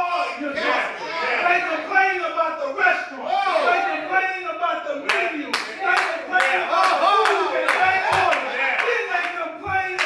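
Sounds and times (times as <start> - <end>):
hand clapping in rhythm: 5.1 - 10.0.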